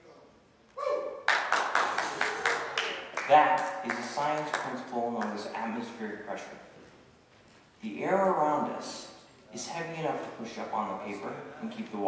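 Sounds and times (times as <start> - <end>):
hand claps: 1.2 - 5.5.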